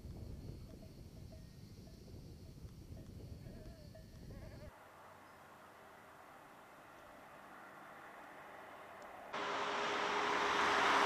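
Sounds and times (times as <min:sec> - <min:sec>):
wind rumble on microphone: 0:00.0 - 0:04.7.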